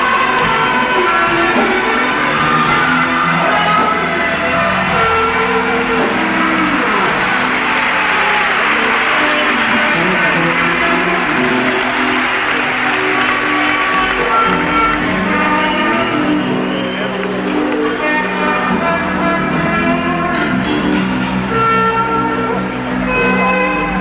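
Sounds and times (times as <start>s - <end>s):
crowd noise: 0.0s - 24.0s
guitar: 0.0s - 24.0s
live rock band playing: 0.0s - 24.0s.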